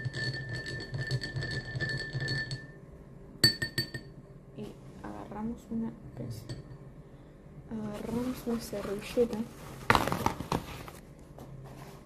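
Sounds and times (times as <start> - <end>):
objects knocking and clicking: 0.0 - 2.7.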